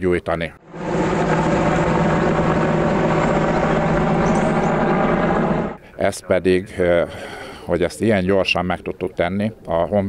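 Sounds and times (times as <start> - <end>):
helicopter rotor and engine: 0.6 - 5.8.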